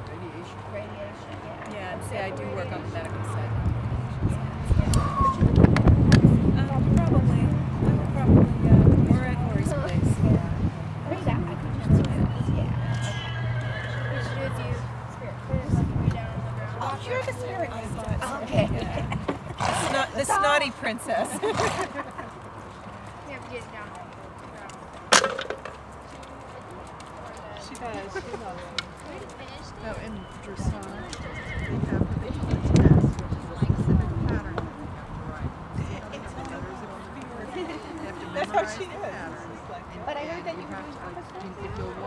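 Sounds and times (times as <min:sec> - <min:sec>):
horse whinnying: 0:12.6 - 0:14.6, 0:31.0 - 0:31.8.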